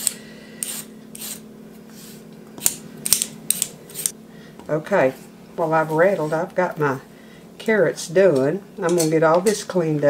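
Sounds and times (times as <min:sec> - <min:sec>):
vegetable peeler scraping carrot: 0:00.0 - 0:02.8, 0:03.5 - 0:04.1
faint steady hum: 0:00.0 - 0:10.0.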